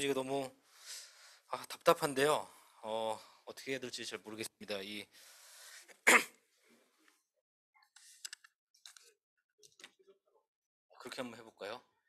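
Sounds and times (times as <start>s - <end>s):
man clearing throat: 6.1s - 6.4s.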